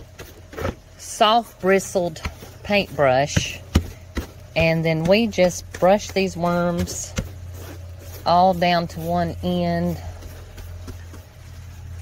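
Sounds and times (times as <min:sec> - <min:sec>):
low machine hum: 0:00.0 - 0:12.0
paintbrush brushing plastic tray: 0:00.0 - 0:12.0.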